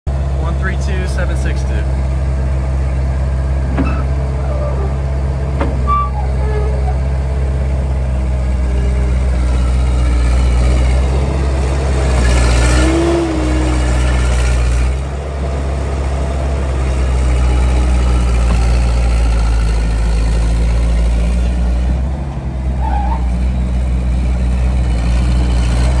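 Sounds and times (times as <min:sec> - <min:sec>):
skid steer engine running: 0:00.1 - 0:26.0.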